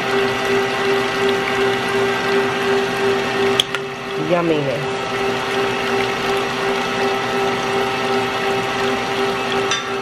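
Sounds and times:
stand mixer motor humming: 0:00.0 - 0:10.0.

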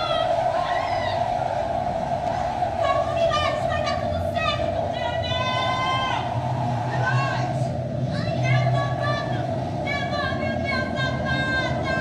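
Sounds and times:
loud steady droning: 0:00.0 - 0:12.0
wavering high gliding tones: 0:00.0 - 0:12.0.

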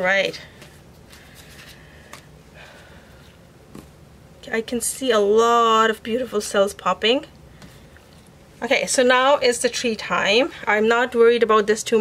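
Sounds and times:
paper rustling: 0:00.6 - 0:02.3.

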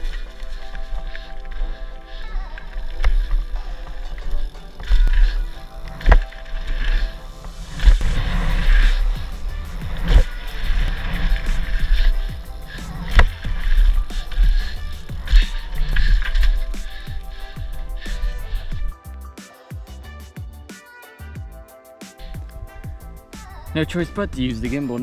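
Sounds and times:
bike tyre and frame rumble: 0:00.0 - 0:19.2, 0:22.2 - 0:25.0
background music: 0:00.0 - 0:25.0.

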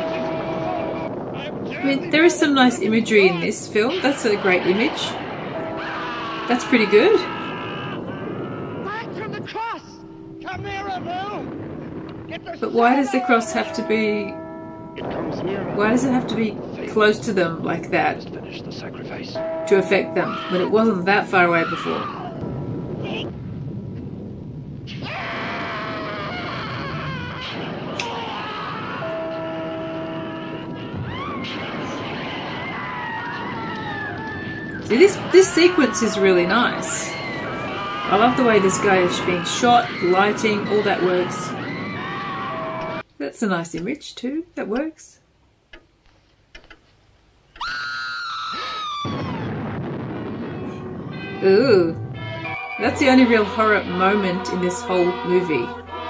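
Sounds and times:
voices crying out and screaming: 0:00.0 - 0:14.2, 0:15.0 - 0:22.4, 0:24.9 - 0:43.0, 0:47.6 - 0:56.0
dramatic horror music: 0:00.0 - 0:23.3, 0:25.0 - 0:43.0
steady rushing noise: 0:00.0 - 0:43.0
woman screaming shrilly: 0:02.6 - 0:09.0, 0:20.0 - 0:22.4, 0:31.0 - 0:43.0, 0:47.6 - 0:49.5.

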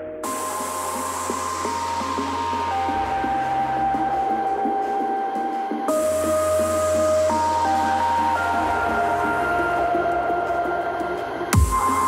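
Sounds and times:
loud electronic music with deep bass: 0:00.0 - 0:12.0.

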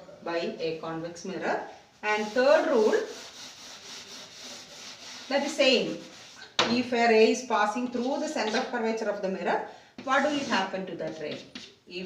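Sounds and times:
eraser rubbing on chalkboard: 0:02.0 - 0:06.5, 0:07.9 - 0:08.8, 0:10.0 - 0:11.8.

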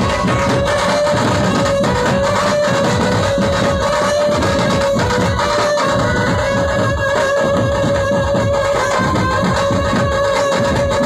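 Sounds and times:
band melody over loudspeakers: 0:00.0 - 0:11.0
continuous drumming: 0:00.0 - 0:11.0.

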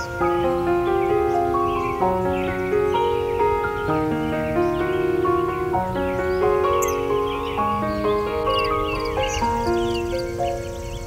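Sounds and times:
birds chirping: 0:00.0 - 0:11.0
slow soft piano music: 0:00.0 - 0:11.0.

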